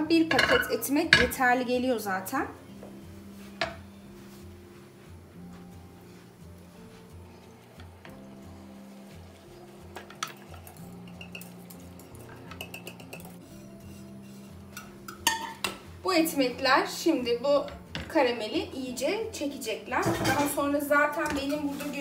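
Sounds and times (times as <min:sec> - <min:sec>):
soft background music: 0:00.0 - 0:22.0
metal ladle clinking: 0:00.3 - 0:01.4, 0:09.9 - 0:15.8.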